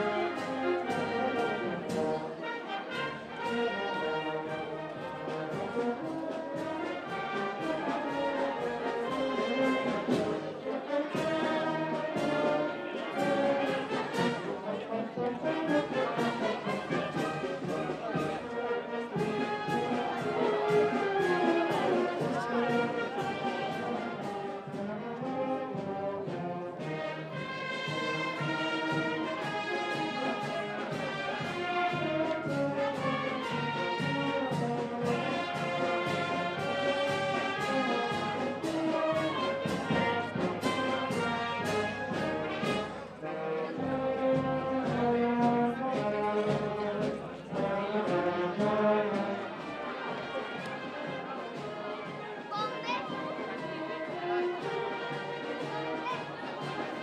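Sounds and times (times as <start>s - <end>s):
brass band playing: 0.0s - 57.0s.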